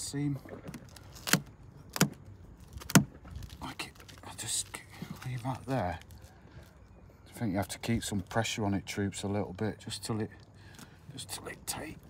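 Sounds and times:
adhesive tape crackling: 0.7s - 4.3s.

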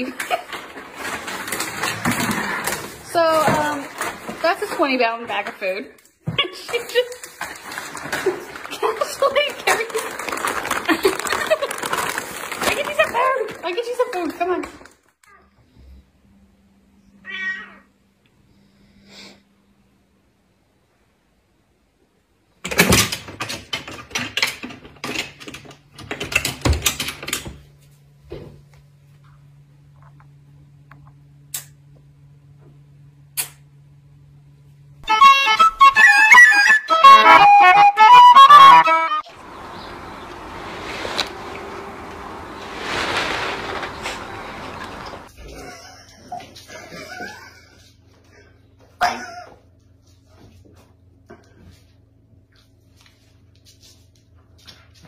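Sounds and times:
rustling hissy noise: 39.3s - 45.3s.

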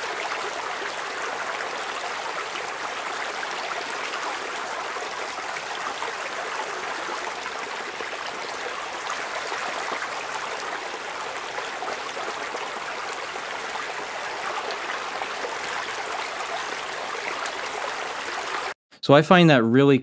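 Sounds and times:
rain on pavement: 0.0s - 18.8s
trickling water: 0.0s - 18.8s.

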